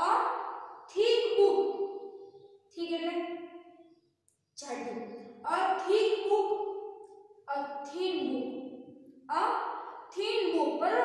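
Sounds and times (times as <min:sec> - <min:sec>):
woman speaking: 0:00.0 - 0:01.8, 0:02.8 - 0:03.2, 0:04.6 - 0:06.7, 0:07.5 - 0:08.6, 0:09.3 - 0:09.6, 0:10.2 - 0:11.0.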